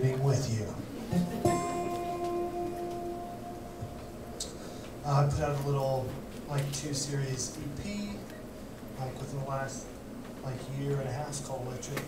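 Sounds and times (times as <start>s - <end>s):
acoustic guitar note ringing: 1.1s - 5.4s.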